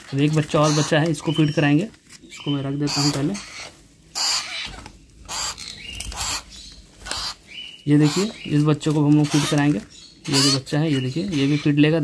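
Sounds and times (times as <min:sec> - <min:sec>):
baby parakeet begging calls: 0:00.0 - 0:12.0.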